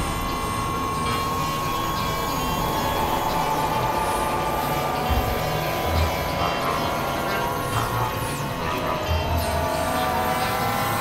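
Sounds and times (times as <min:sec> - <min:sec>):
steady held tone: 0:00.0 - 0:10.2
layered music and noise: 0:00.0 - 0:11.0.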